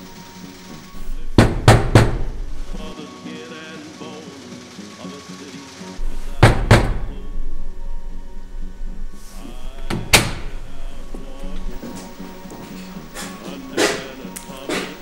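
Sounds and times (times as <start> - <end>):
knocking on a door: 1.4 - 2.5, 6.4 - 7.1.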